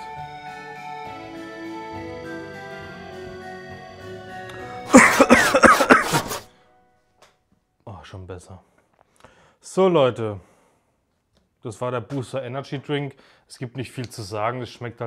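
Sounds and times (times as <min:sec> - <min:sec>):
background music with sustained tones: 0:00.0 - 0:07.6
person coughing and throat-clearing: 0:04.9 - 0:06.5.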